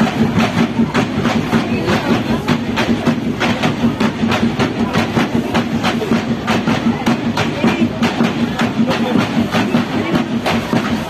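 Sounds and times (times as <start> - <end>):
drumline fast beat: 0.0 - 11.0.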